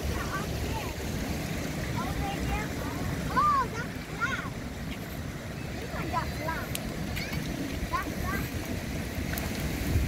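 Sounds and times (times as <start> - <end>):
water flowing through channels: 0.0 - 10.0
wind on microphone: 6.6 - 10.0.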